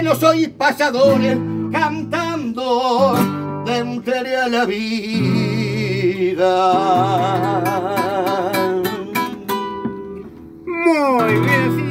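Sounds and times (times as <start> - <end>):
classical guitar plucking: 0.0 - 11.9
man exclaiming: 10.7 - 11.9.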